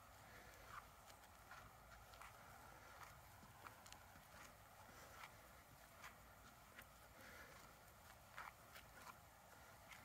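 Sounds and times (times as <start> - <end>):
footsteps on paved path: 0.0 - 10.0.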